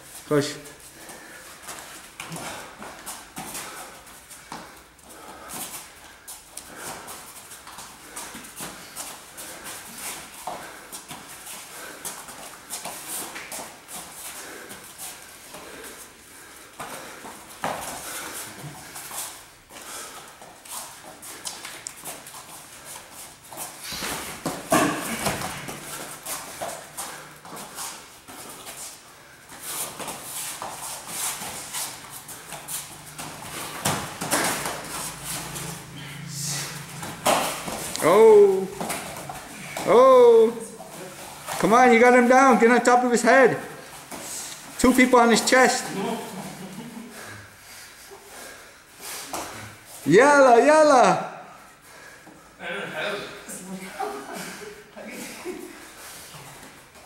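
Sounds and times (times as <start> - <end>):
feet shuffling on mats: 0.0 - 42.1, 43.6 - 50.1, 54.1 - 57.0.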